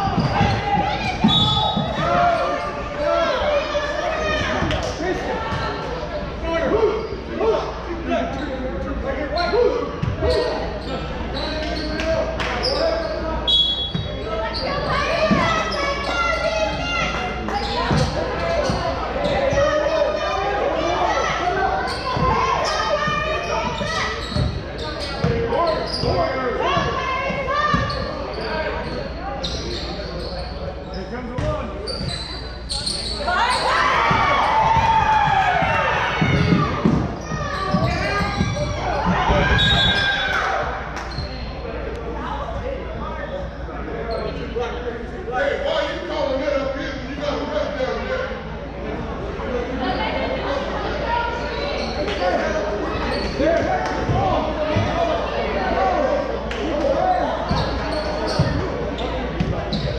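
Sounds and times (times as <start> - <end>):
voices echoing in a gym: 0.0 - 59.9.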